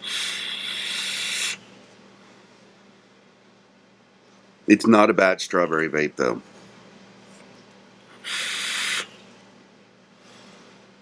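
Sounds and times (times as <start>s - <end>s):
breathy exhale hiss: 0.0s - 1.6s, 8.2s - 9.1s
e-cigarette inhale hiss: 0.0s - 1.6s, 8.2s - 9.1s.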